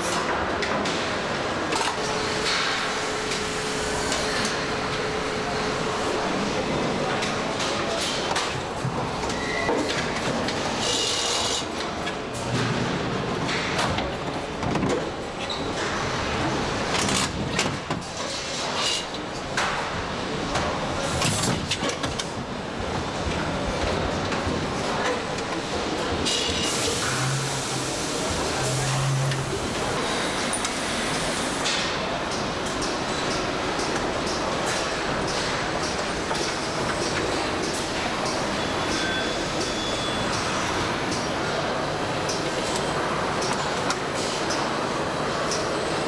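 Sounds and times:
factory machinery din: 0:24.6 - 0:46.0.

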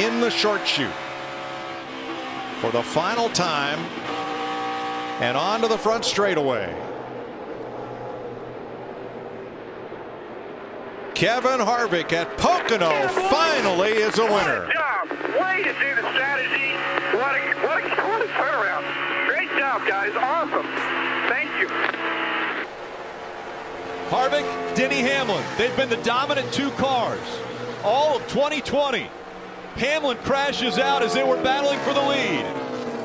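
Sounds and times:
race car engine drone: 0:00.0 - 0:33.0
radio hiss: 0:15.1 - 0:22.6.

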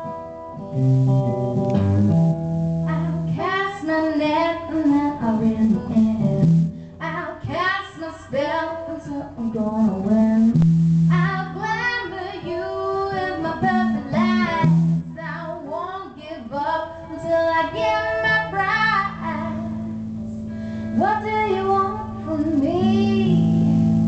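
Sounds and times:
electric guitar: 0:00.0 - 0:24.0
woman singing: 0:02.9 - 0:20.0, 0:20.9 - 0:23.8.

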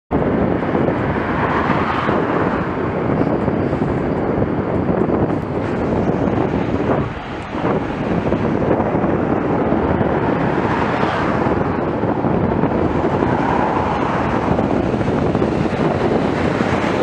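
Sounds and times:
road and tyre noise: 0:00.1 - 0:17.0
wind rushing over microphone: 0:00.1 - 0:17.0.

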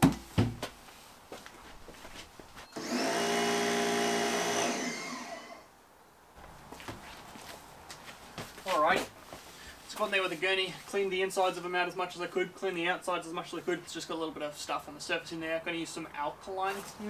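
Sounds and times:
pressure washer motor whine: 0:02.7 - 0:05.6.

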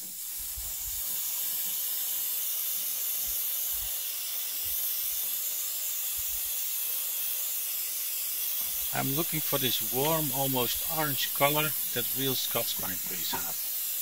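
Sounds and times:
airbrush hissing: 0:00.0 - 0:14.0.

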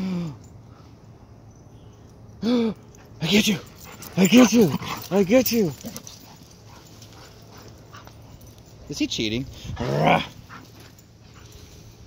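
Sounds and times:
dogs scuffling while playing: 0:03.7 - 0:08.9.

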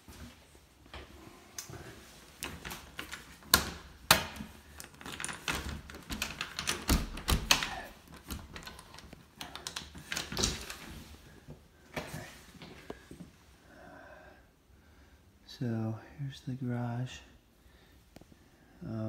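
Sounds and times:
door being opened: 0:02.4 - 0:11.0.

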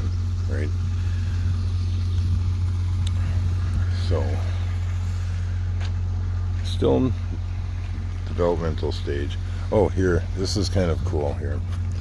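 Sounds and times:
small engine idling: 0:00.0 - 0:12.0.

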